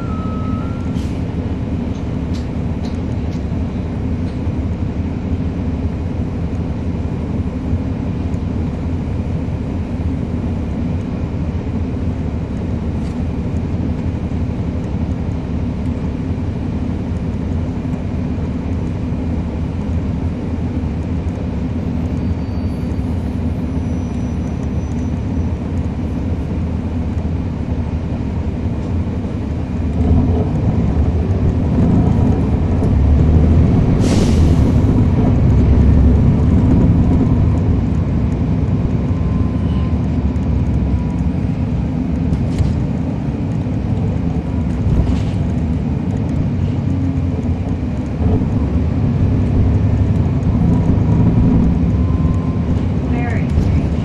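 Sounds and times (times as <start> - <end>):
bus diesel engine droning: 0.0 - 54.0.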